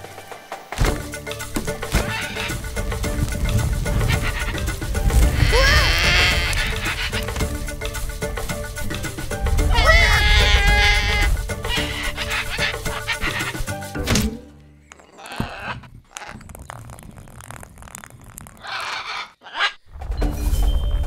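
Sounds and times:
cartoon background music: 0:00.0 - 0:15.5
cartoon dinosaur calls: 0:05.3 - 0:07.3, 0:09.7 - 0:13.6.

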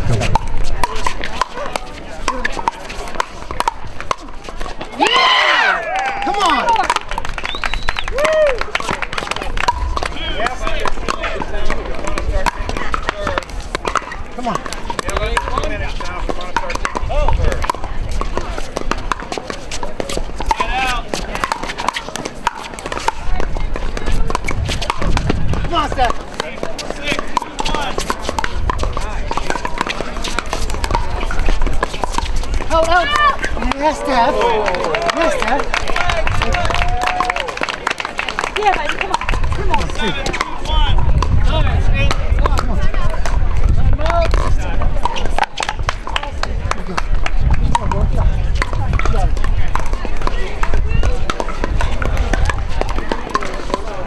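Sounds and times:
players calling out: 0:04.2 - 0:17.6, 0:19.3 - 0:41.0.

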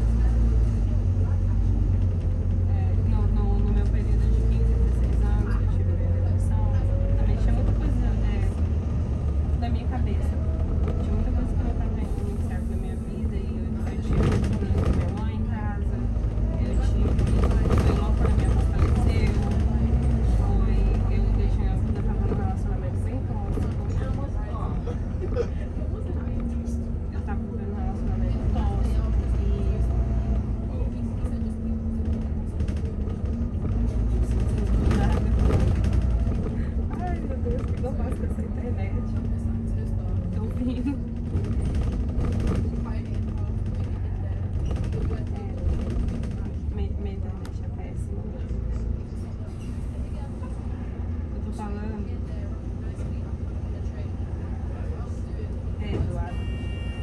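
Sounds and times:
bus engine rumble: 0:00.0 - 0:57.0
road noise: 0:00.0 - 0:57.0.

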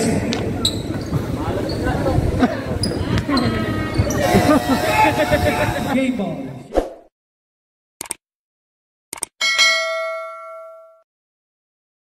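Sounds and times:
notification bell ding: 0:09.4 - 0:11.0.

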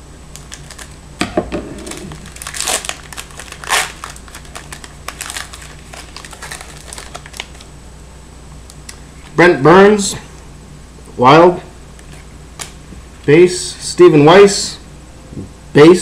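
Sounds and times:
scissors snipping foil pack: 0:00.3 - 0:01.0, 0:01.9 - 0:07.6
wrapper crinkling and rustling: 0:00.3 - 0:01.0, 0:01.8 - 0:07.7.

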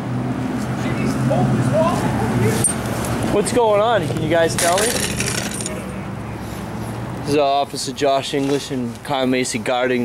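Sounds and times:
metallic jingling clatter: 0:04.4 - 0:05.8.

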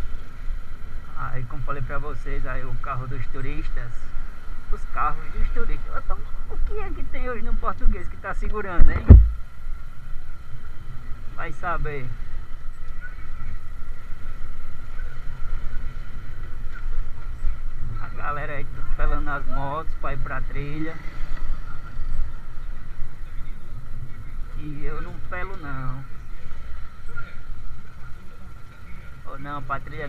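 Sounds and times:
wind rumble on microphone: 0:00.0 - 0:29.1.

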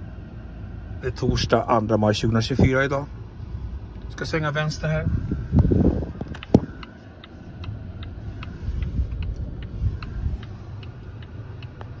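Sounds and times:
road noise inside car: 0:00.0 - 0:12.0
turn signal ticking: 0:03.8 - 0:12.0.

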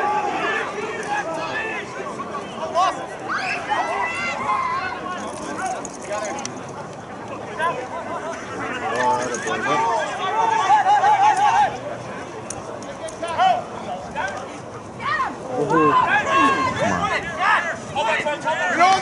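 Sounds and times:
people shouting and calling: 0:00.0 - 0:06.2, 0:07.6 - 0:12.2, 0:12.9 - 0:19.0.

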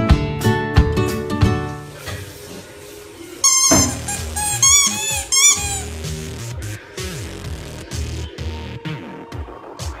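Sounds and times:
rubber squeaky ball squeaking: 0:03.4 - 0:06.0.

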